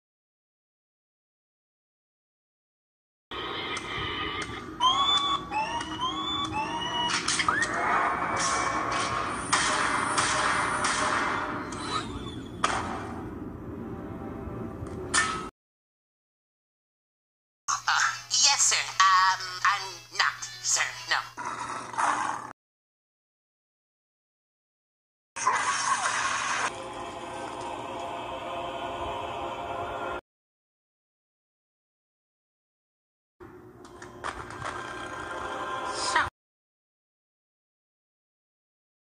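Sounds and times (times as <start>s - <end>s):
eerie background music chord: 13.4s - 14.8s, 26.7s - 30.2s.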